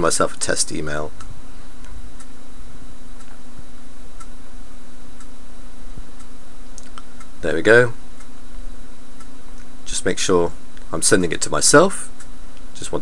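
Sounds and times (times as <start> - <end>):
low electrical hum: 0.0 - 13.0.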